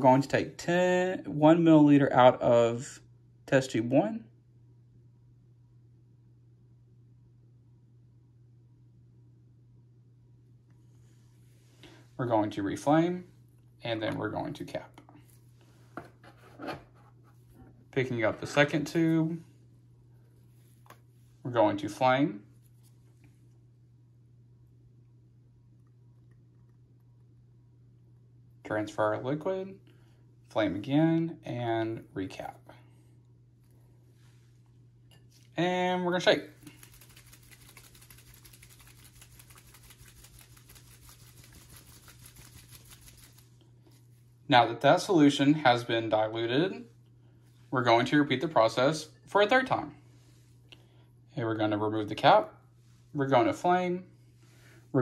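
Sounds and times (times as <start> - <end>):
liquid sloshing in shaken tube: 36.6 - 44.0.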